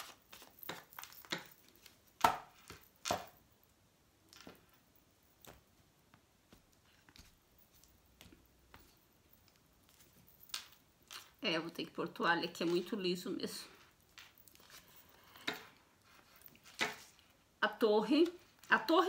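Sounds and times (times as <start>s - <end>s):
cards shuffled and laid on table: 0.0s - 3.4s, 14.1s - 17.2s.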